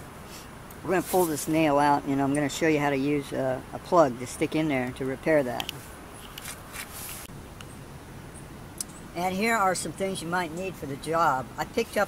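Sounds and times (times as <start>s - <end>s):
faint background noise: 0.0s - 12.0s
short rustle: 0.2s - 1.6s, 5.7s - 7.3s.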